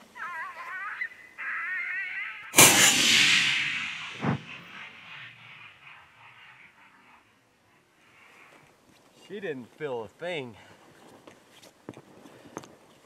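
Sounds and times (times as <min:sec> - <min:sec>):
rifle shot with echo: 0:02.6 - 0:05.7.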